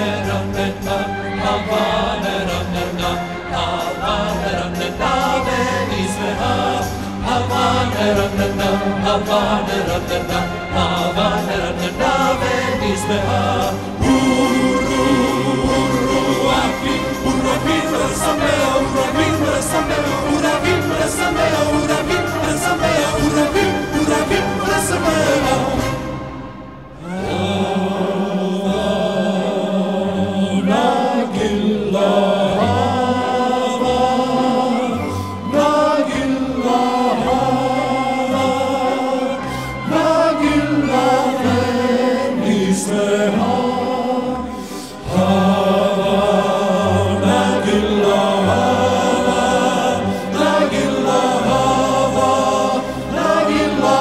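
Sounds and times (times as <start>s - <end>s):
group voices singing: 0.0s - 26.2s, 27.0s - 54.0s.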